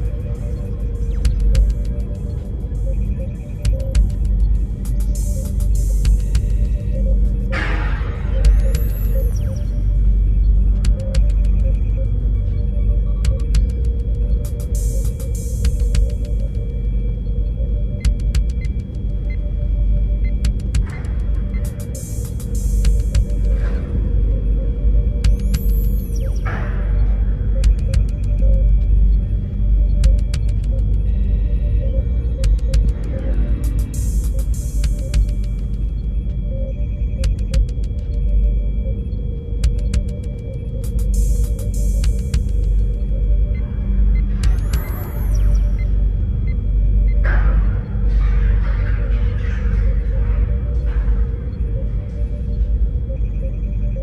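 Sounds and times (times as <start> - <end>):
deep bass drone: 0.0 - 54.0
sharp clicking percussion: 27.6 - 28.5, 30.0 - 30.7, 37.2 - 38.0, 40.9 - 42.7.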